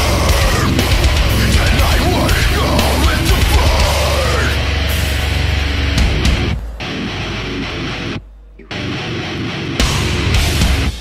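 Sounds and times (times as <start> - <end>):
death metal music: 0.0 - 11.0.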